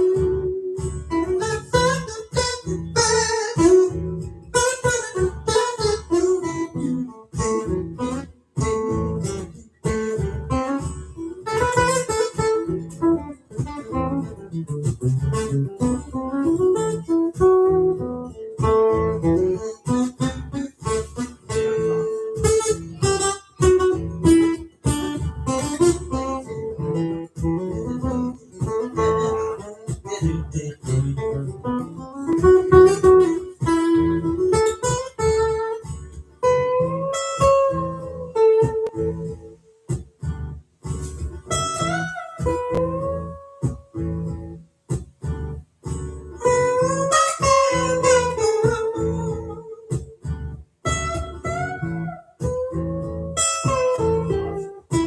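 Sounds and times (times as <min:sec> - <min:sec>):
amplified acoustic guitar strumming: 0:00.0 - 0:55.0.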